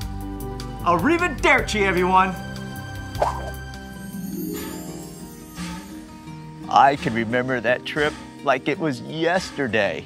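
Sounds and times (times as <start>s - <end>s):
background music with held notes: 0.0s - 10.0s
blip sound effect: 3.2s - 3.6s.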